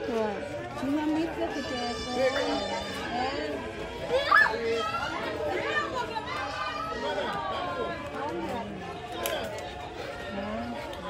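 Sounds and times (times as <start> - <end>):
people chattering: 0.0 - 11.0
children's voices: 1.1 - 8.0.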